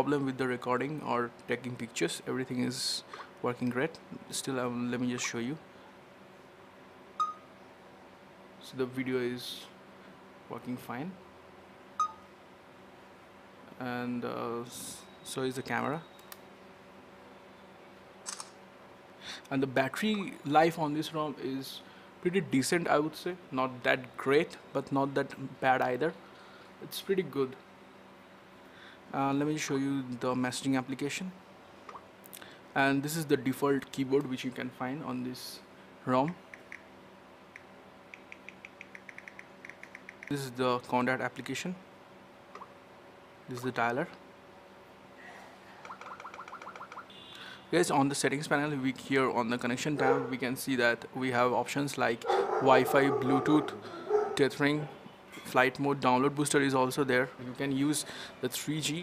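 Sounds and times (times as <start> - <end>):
short electronic beep: 7.2 - 7.4
touchscreen keyboard typing ticks: 37.6 - 40.3, 45.8 - 47.1.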